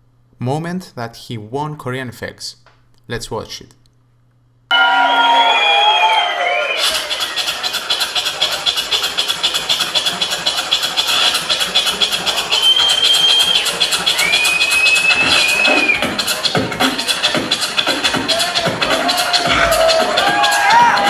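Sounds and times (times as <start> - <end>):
beatboxing whistle-like tones: 6.6 - 21.0
beatboxing percussive beats: 6.8 - 21.0.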